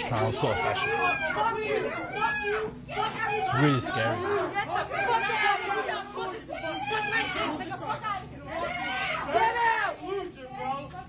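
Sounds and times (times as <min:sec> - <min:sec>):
people shouting angrily: 0:00.0 - 0:11.0.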